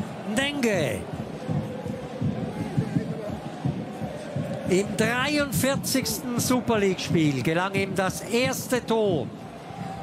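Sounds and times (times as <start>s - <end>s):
stadium crowd: 0.0s - 10.0s
irregular low thumps: 0.9s - 10.0s.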